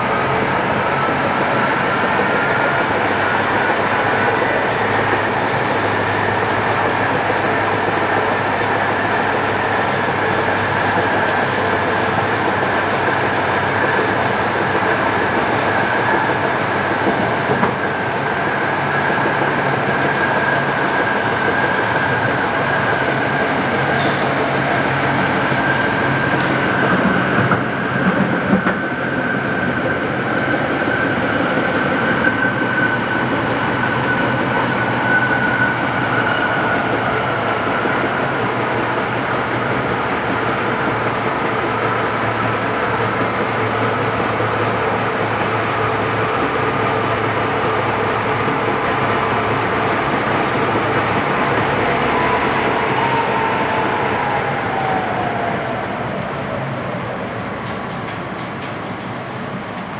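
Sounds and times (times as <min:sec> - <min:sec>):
tram wheels rumbling: 0:00.0 - 0:59.9
tram whine: 0:00.0 - 0:59.9.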